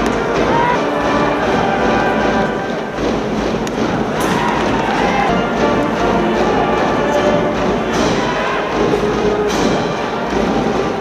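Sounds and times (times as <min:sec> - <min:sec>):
ballpark crowd noise: 0:00.0 - 0:11.0
band music: 0:00.0 - 0:11.0.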